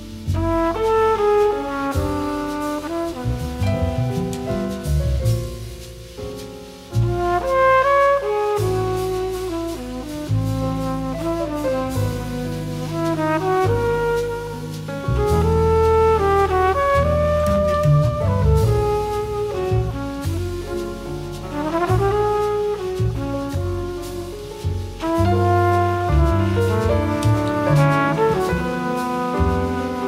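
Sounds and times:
bass line: 0:00.0 - 0:30.0
jazz brass horns playing: 0:00.0 - 0:30.0.

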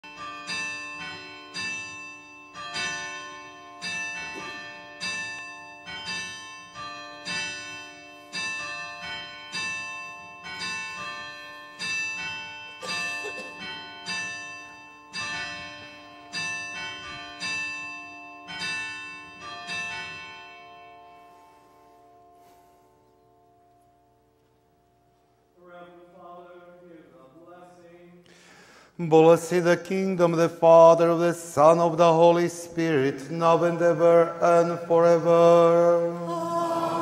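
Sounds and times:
church bell ringing: 0:00.0 - 0:24.3, 0:29.2 - 0:37.0.

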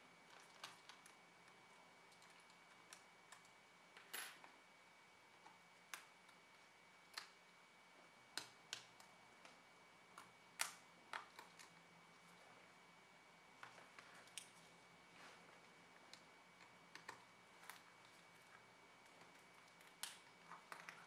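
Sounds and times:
small clicks and taps: 0:08.3 - 0:11.8, 0:16.0 - 0:21.0.

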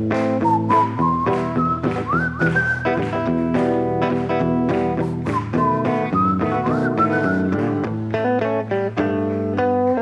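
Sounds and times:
bass and drums: 0:00.0 - 0:08.1
electric guitar chords: 0:00.0 - 0:10.0.

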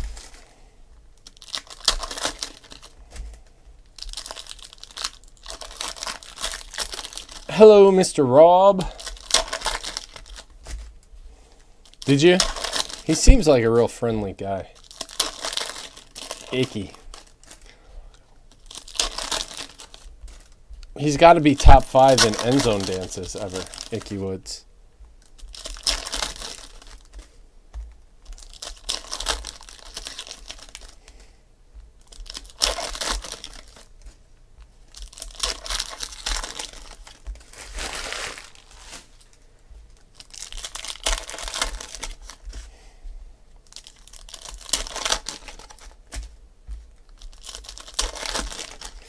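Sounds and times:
foil wrappers crinkling and tearing: 0:00.0 - 0:24.6, 0:25.2 - 0:27.4, 0:28.2 - 0:31.4, 0:32.0 - 0:43.0, 0:43.6 - 0:49.0.

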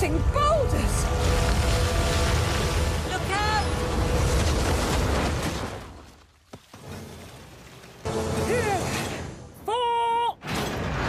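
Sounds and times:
rockslide rumble: 0:00.0 - 0:08.1.

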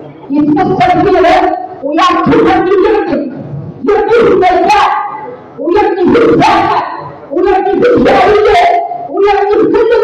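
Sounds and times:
woman calling through loudspeakers: 0:00.2 - 0:10.0.

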